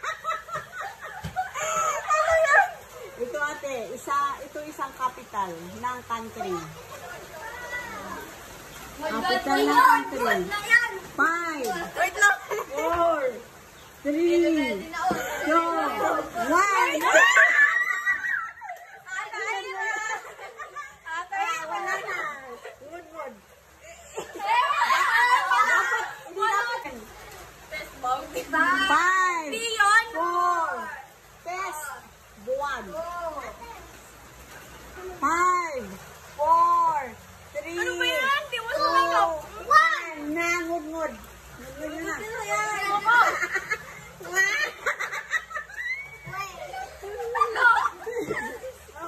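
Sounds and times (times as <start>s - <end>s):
young women laughing and squealing: 0.0s - 3.8s, 11.8s - 13.5s, 14.7s - 31.0s, 42.0s - 49.0s
children chattering excitedly: 0.0s - 49.0s.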